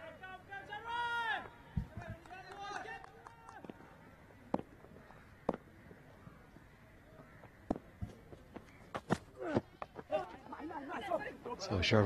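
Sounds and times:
open-air ground noise: 0.0 - 12.0.

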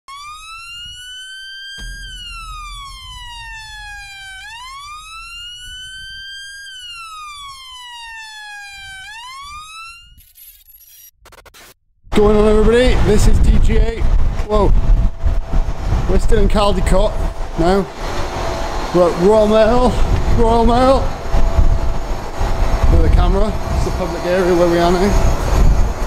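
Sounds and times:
wailing siren: 0.0 - 10.2, 14.8 - 26.0
low rumble: 1.8 - 7.8, 12.1 - 26.0.

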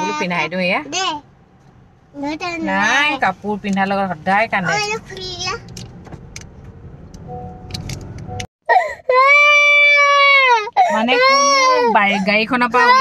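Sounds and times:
car cabin road rumble: 0.0 - 8.5, 9.3 - 13.0
child crying loudly: 8.7 - 12.2, 12.8 - 13.0.

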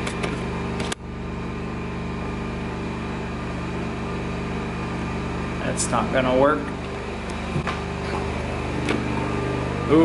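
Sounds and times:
low mechanical drone: 0.0 - 10.0.

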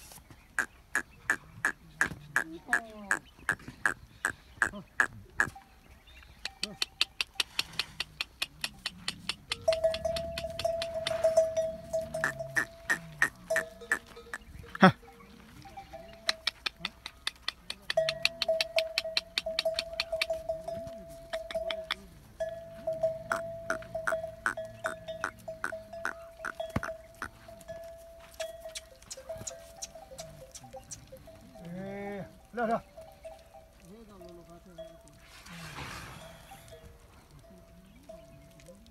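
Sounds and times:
camel bells clanking: 9.5 - 16.7, 17.9 - 38.9
held ringing tone: 9.6 - 16.2.

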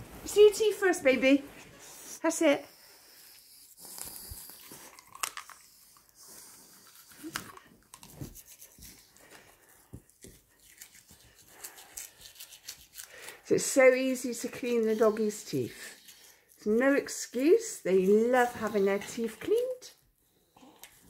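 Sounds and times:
toothbrush brushing teeth: 2.1 - 19.9.

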